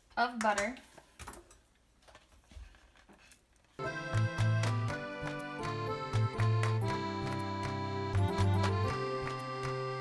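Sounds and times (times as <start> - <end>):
background music with steady beat: 3.8 - 10.0.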